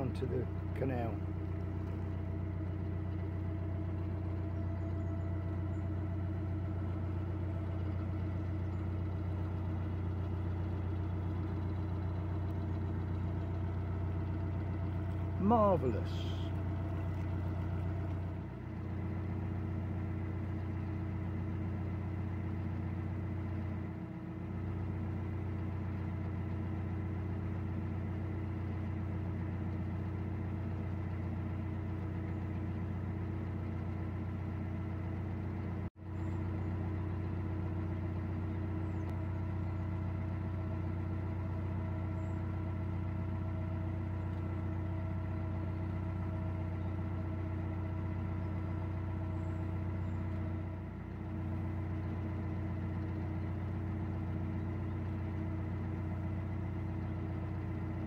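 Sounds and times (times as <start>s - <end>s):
diesel engine droning: 0.0s - 58.0s.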